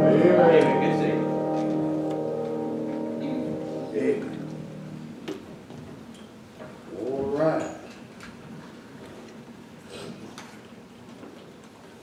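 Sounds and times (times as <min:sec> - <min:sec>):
sustained music note: 0:00.0 - 0:05.4.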